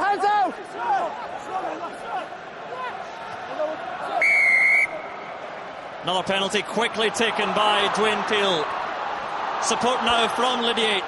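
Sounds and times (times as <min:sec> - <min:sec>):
referee's whistle blast: 0:04.2 - 0:05.2.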